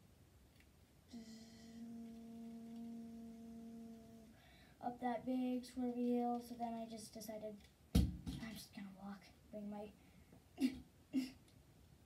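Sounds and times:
child humming a steady note: 1.1 - 4.6.

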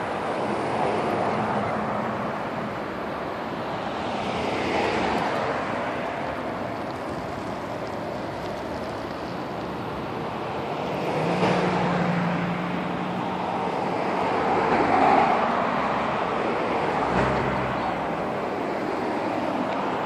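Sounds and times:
vehicles driving past on highway: 0.0 - 20.0.

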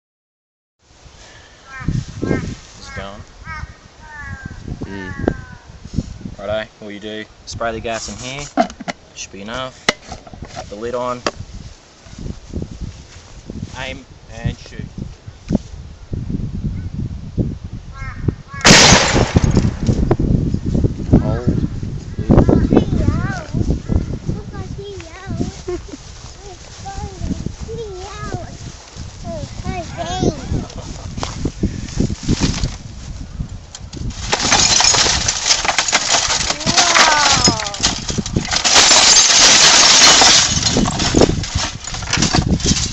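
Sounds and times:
loud gas gun bang: 18.6 - 19.9
sharp cracks: 18.6 - 20.0
broken glass and plastic crunching: 34.1 - 42.9.

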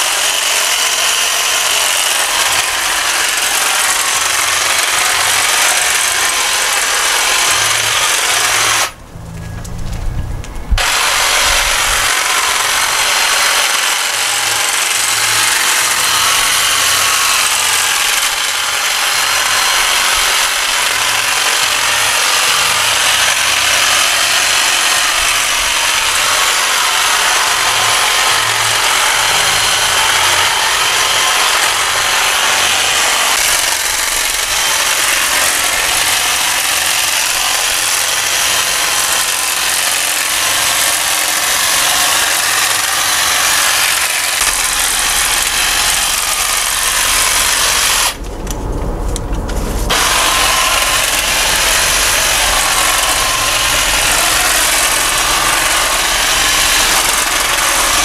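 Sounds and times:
electric hedge trimmer running: 0.0 - 9.0, 10.7 - 48.2, 49.9 - 58.0.

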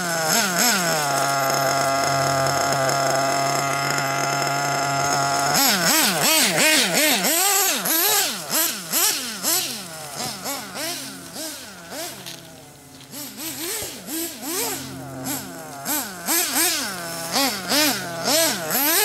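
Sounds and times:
rc car engine revving: 0.0 - 19.0.

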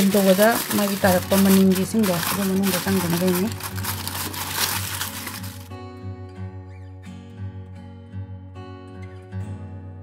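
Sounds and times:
aluminium foil crinkling: 0.0 - 5.7
plucked guitar music: 2.8 - 10.0.

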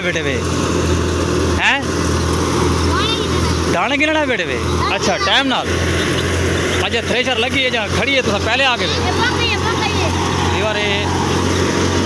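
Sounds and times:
thresher low drone: 0.0 - 12.0.

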